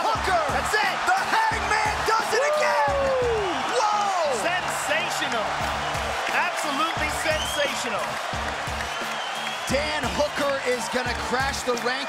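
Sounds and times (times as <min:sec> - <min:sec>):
crowd yelling and cheering: 0:00.0 - 0:12.0
music playing: 0:00.0 - 0:12.0.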